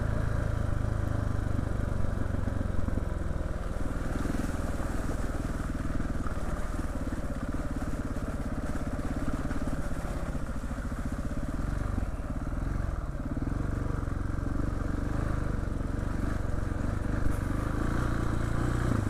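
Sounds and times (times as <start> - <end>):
trail motorcycle engine running: 0.0 - 19.0.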